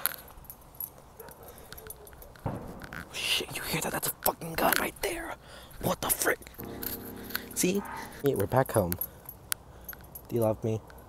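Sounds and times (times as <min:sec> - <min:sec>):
metal keys jingling: 0:00.0 - 0:03.1, 0:06.6 - 0:11.0.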